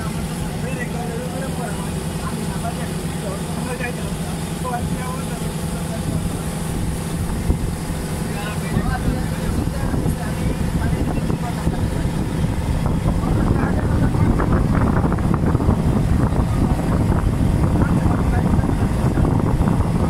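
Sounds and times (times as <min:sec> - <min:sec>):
boat engine droning: 0:00.0 - 0:20.0
faint passenger chatter: 0:00.0 - 0:20.0.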